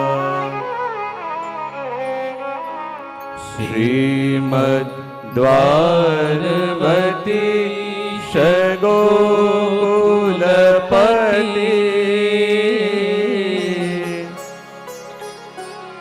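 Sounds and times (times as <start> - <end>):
man chanting a hymn: 3.6 - 14.4.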